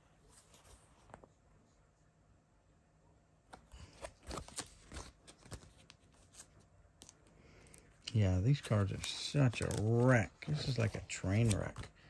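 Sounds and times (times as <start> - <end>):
plastic binder pages crackling: 3.5 - 12.0.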